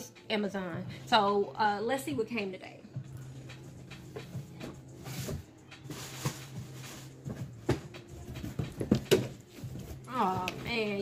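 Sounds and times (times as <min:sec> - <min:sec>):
cardboard box knocks and clicks: 0:07.3 - 0:09.8.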